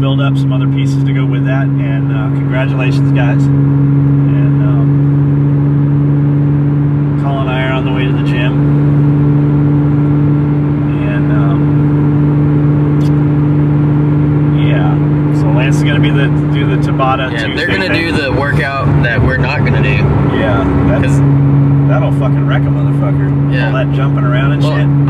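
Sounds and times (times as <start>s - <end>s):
car engine droning: 0.0s - 25.0s.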